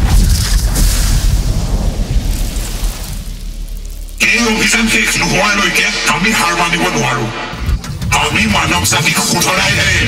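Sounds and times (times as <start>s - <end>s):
deep rumble: 0.0s - 10.0s
noisy hiss: 0.4s - 7.5s.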